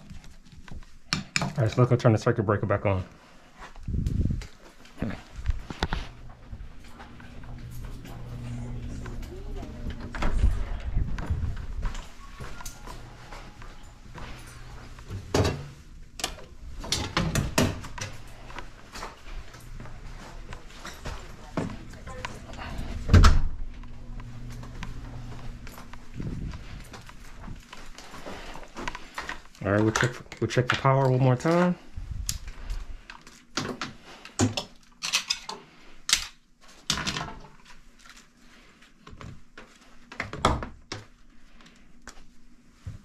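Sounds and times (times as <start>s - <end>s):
steady low hum: 3.0s - 29.8s
footsteps: 3.4s - 30.2s.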